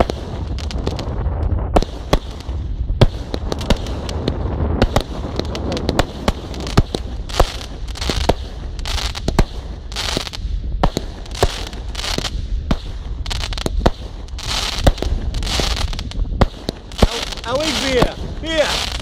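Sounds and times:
fireworks bangs: 0:00.0 - 0:19.0
fireworks crackling: 0:00.0 - 0:19.0.

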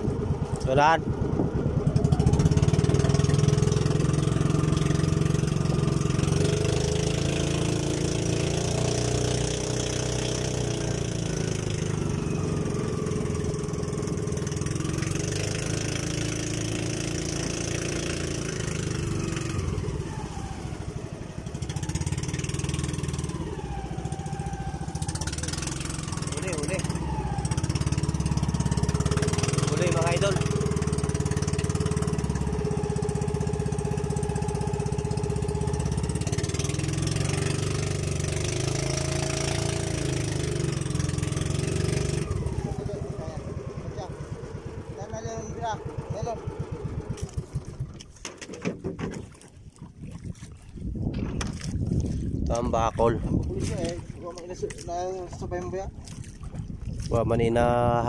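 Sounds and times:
boat engine running: 0:00.0 - 0:58.0
water rushing past hull: 0:00.0 - 0:58.0.

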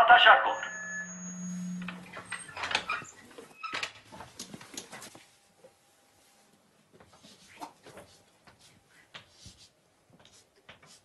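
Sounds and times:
loudspeaker hum: 0:00.0 - 0:02.2.

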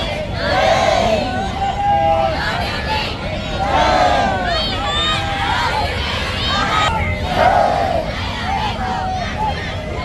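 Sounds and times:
crowd shouting a slogan: 0:00.0 - 0:10.0.

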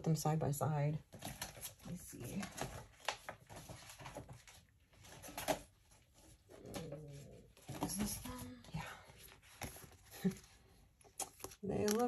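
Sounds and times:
plastic sheets rustling: 0:01.0 - 0:12.0.

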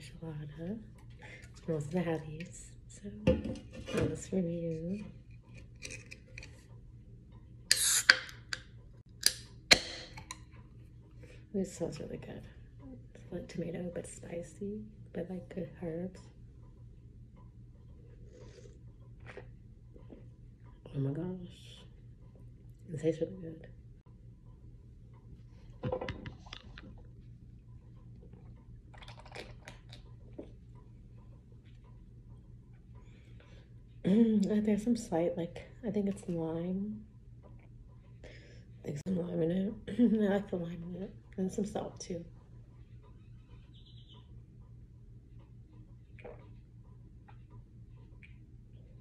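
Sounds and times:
steady low hum: 0:00.0 - 0:49.0
can hissing open: 0:07.7 - 0:08.6.

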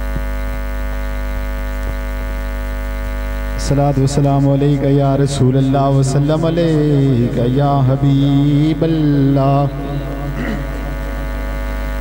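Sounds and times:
electrical hum and buzz: 0:00.0 - 0:12.0.

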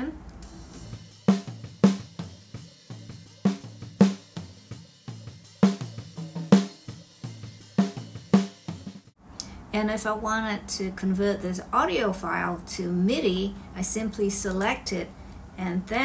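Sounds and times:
drum kit bleed: 0:00.0 - 0:09.2.

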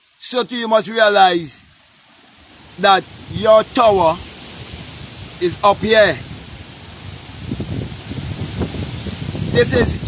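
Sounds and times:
breeze in foliage: 0:00.0 - 0:10.0
wind gusting on microphone: 0:01.5 - 0:10.0.

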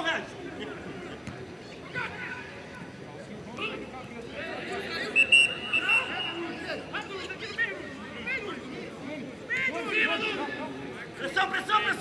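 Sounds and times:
whistle blast: 0:05.1 - 0:06.5.

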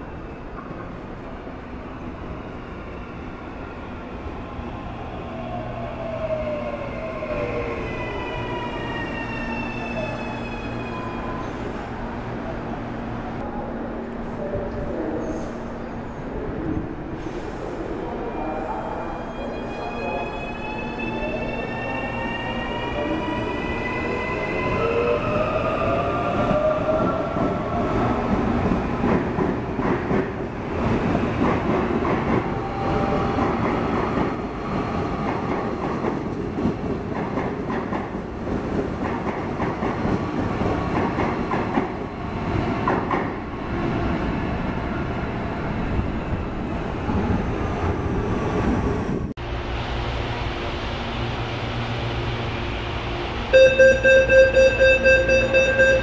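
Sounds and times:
train wheels rumbling on rails: 0:22.9 - 0:53.5.

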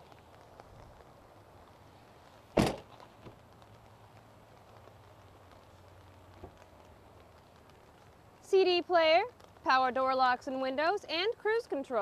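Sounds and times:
light rain patter: 0:00.0 - 0:12.0.

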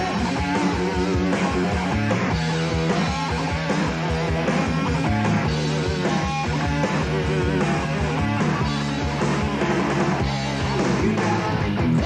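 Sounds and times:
electric guitar: 0:00.0 - 0:12.0.

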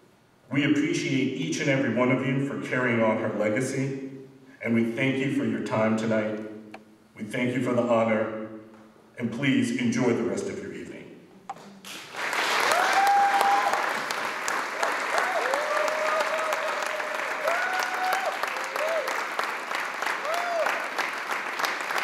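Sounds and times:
audience applauding: 0:11.9 - 0:22.0
whooping cheers: 0:12.5 - 0:14.1, 0:15.0 - 0:19.4, 0:20.1 - 0:21.0.

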